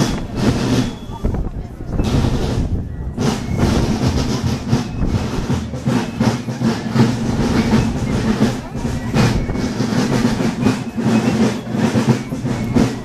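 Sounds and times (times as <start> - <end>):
crowd murmur: 0.0 - 13.0.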